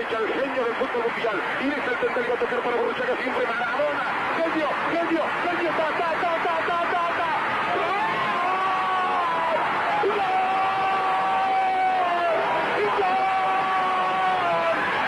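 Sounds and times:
stadium crowd noise: 0:00.0 - 0:15.0.

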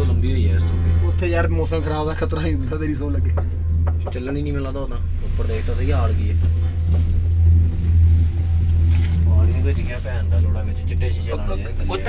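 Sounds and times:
cable car cabin rumble: 0:00.0 - 0:12.0.

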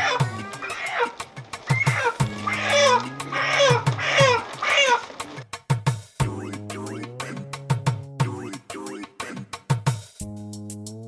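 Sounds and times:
high falling animal cries: 0:00.0 - 0:05.3
background music with drum beat: 0:00.0 - 0:11.0.

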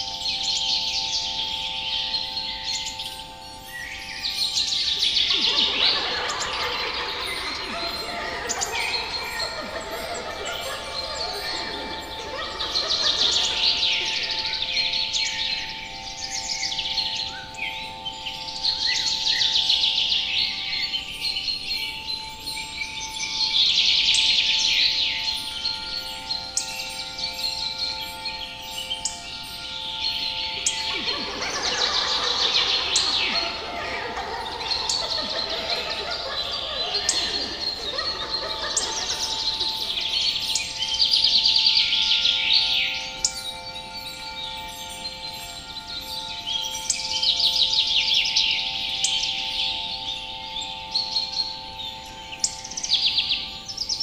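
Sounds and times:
songbirds chirping and singing: 0:00.0 - 0:54.0
steady held tones: 0:30.2 - 0:41.6.

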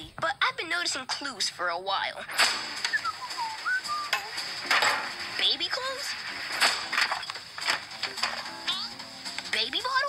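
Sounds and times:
whistled sliding notes: 0:02.8 - 0:04.3.

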